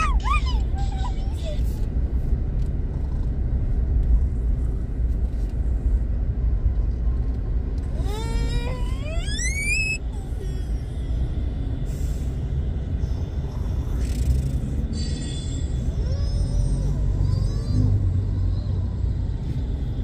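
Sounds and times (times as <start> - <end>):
car driving rumble from inside: 0.0 - 20.0
high whine rising in pitch: 8.0 - 10.0.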